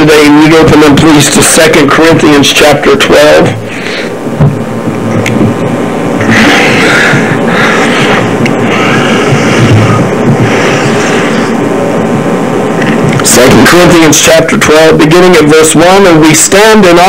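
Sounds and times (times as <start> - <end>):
recording hum and hiss: 0.0 - 17.0.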